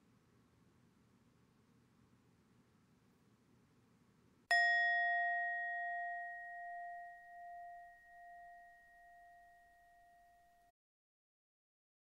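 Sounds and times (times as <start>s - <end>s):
struck bell ringing: 4.5s - 10.7s.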